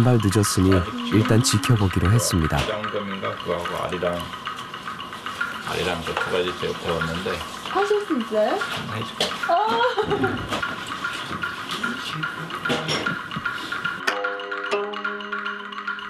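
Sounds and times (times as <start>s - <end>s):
people talking: 0.0s - 4.3s.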